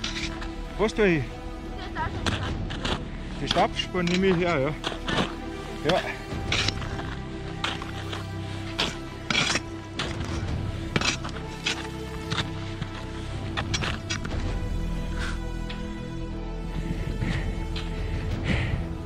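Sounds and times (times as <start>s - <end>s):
background music: 0.0s - 19.0s
crampon steps crunching snow: 2.1s - 15.4s.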